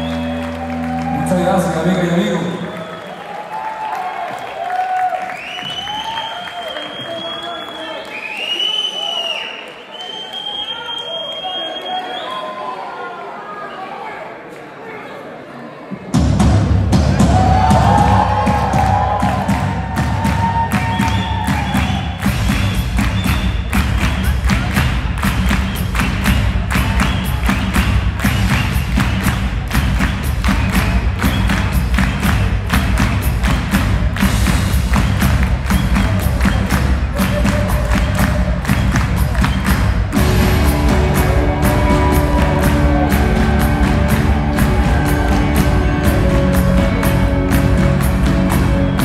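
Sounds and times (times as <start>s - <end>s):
rock band playing instrumental: 37.2s - 49.0s.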